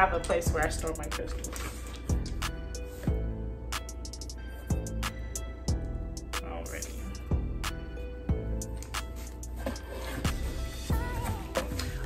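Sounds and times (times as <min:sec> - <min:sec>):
instrumental beat: 0:00.5 - 0:12.0.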